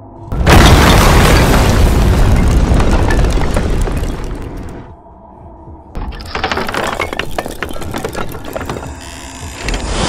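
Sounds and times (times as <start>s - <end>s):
boom and rumbling crash: 0.3s - 4.9s
cracks of breaking stone: 6.0s - 8.9s.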